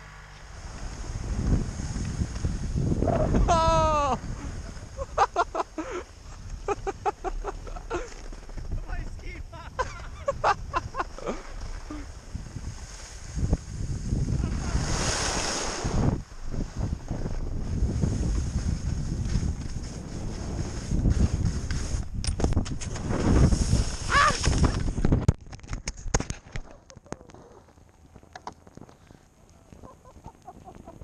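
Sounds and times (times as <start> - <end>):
skis sliding over packed snow: 0.0 - 25.2
wind buffeting microphone: 0.5 - 25.4.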